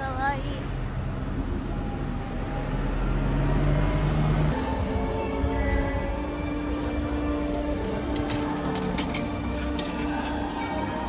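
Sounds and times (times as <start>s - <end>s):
traffic rumble: 0.0s - 10.5s
bus engine revving: 0.8s - 4.6s.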